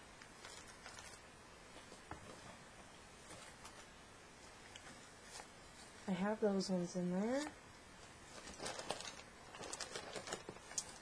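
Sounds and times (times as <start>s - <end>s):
plastic flowers clicking and rustling: 0.2s - 1.3s, 8.3s - 11.0s.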